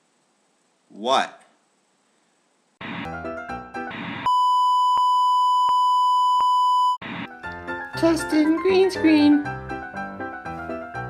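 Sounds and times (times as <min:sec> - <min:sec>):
music: 0:02.8 - 0:04.0, 0:07.0 - 0:11.0
loud electronic beep tone: 0:03.9 - 0:07.3.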